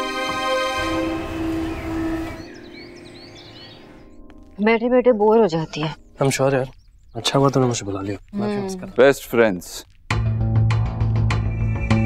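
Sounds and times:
background music: 0.0s - 9.4s, 10.1s - 12.0s
faint outdoor ambience: 0.0s - 10.2s
bird chirps: 1.2s - 4.3s, 5.4s - 9.0s, 11.4s - 12.0s.

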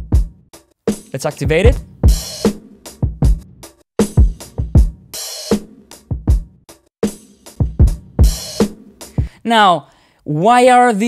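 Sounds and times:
hip-hop drum loop: 0.0s - 9.3s.

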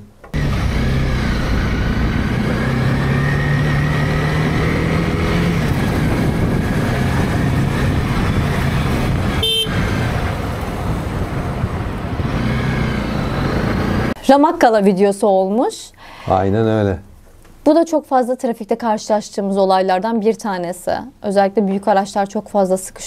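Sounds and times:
motorcycle engine: 0.3s - 14.2s
road and wind noise: 0.3s - 14.2s.

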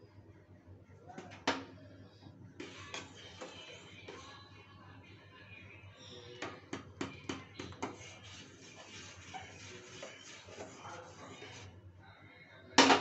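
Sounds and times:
spoon stirring scraping hiss: 2.6s - 4.5s, 5.2s - 11.8s.

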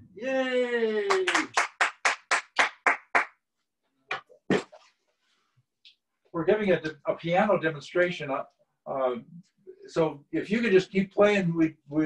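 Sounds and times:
person cheering: 0.2s - 1.6s
hand claps: 1.0s - 3.4s.

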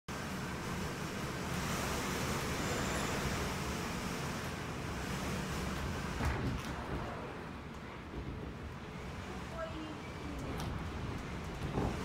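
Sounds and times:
driving rain: 0.1s - 12.0s.

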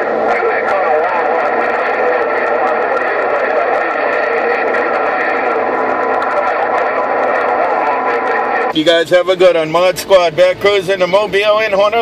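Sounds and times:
radio static: 0.0s - 12.0s.

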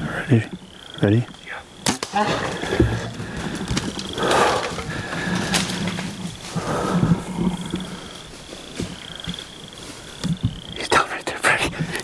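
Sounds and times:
bear growling and bawling: 2.2s - 8.3s.

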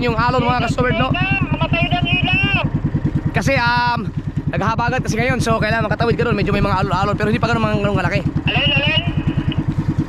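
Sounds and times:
boat engine putter: 0.0s - 10.0s.

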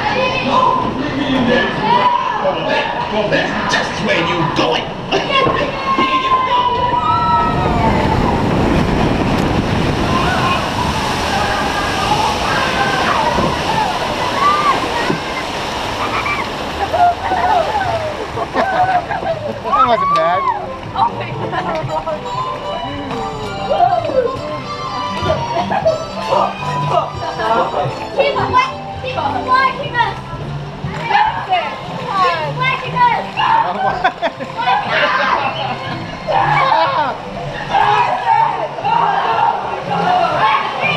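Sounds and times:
rushing sloshing water: 0.0s - 40.9s
voices: 0.0s - 40.9s.

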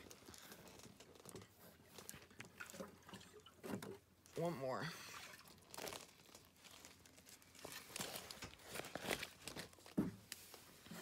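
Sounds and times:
bag crinkling and rustling: 0.0s - 3.1s, 5.3s - 11.0s.

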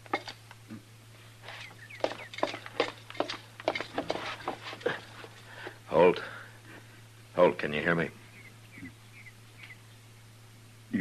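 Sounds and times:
low recording hum: 0.0s - 11.0s
footsteps knocks and clicks: 1.5s - 5.8s.

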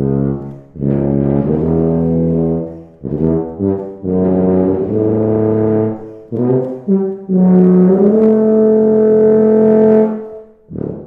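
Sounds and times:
tuba playing long notes: 0.0s - 11.0s.

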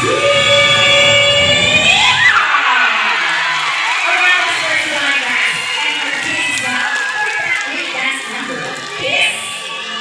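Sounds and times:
children shouting: 0.0s - 10.0s
crowd cheering: 0.0s - 10.0s.

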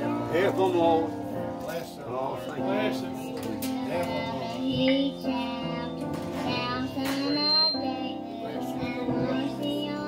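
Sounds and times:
instrumental accompaniment: 0.0s - 10.0s
girls singing a hymn: 2.1s - 10.0s.

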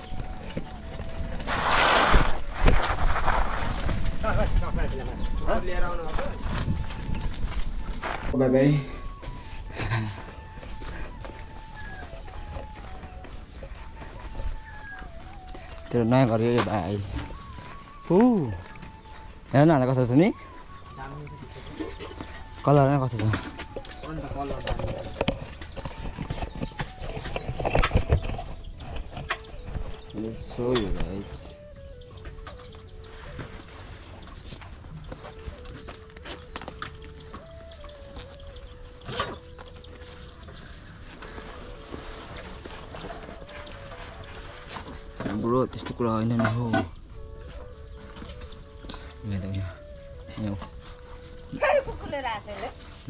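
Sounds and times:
wind buffeting microphone: 0.0s - 9.2s, 24.0s - 33.1s
knocks and clatter of carried camera: 24.6s - 30.0s.

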